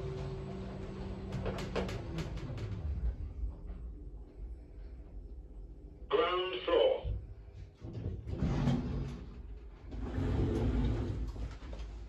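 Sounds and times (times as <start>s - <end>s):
recorded voice announcement: 6.1s - 7.2s.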